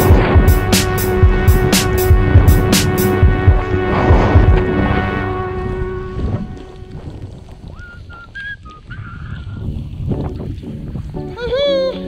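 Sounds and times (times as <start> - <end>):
music: 0.0 - 6.9, 10.1 - 12.0
wind buffeting microphone: 0.0 - 12.0
short high whistle-like tones: 7.8 - 9.2.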